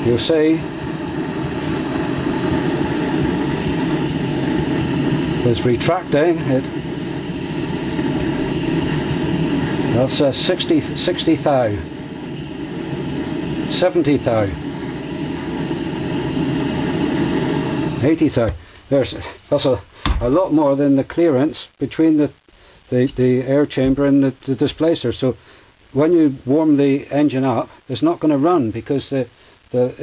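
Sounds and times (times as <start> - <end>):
propane torch flame rushing: 0.0 - 19.2.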